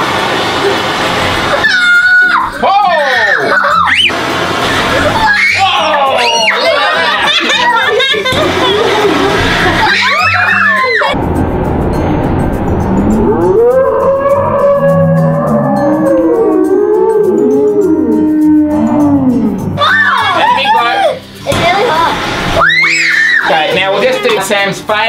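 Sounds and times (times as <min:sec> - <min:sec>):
background music: 0:01.1 - 0:25.0
children shrieking and laughing: 0:01.5 - 0:11.2, 0:19.8 - 0:21.2, 0:22.5 - 0:24.5
slowed-down deep voices: 0:11.2 - 0:19.8.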